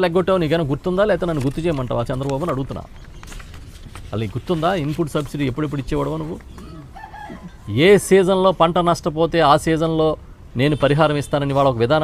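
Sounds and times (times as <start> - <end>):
man speaking into a microphone: 0.0 - 2.9, 4.1 - 6.5, 7.6 - 12.0.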